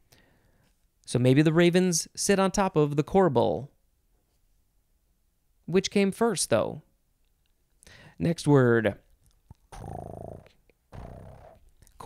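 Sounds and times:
cat purring: 0:09.5 - 0:12.0.

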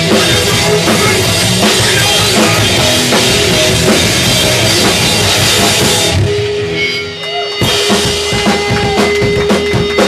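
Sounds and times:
punk band playing live: 0:00.0 - 0:10.0.

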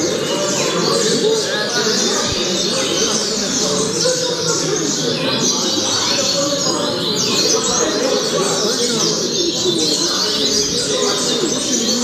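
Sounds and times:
chorus of other birds: 0:00.0 - 0:12.0.

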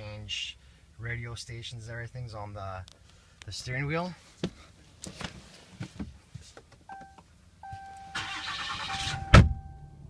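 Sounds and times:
dashboard chime: 0:06.9 - 0:08.2.

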